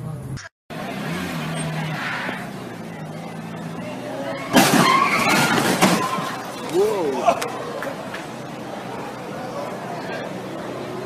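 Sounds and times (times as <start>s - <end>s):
car running: 0.0s - 11.0s.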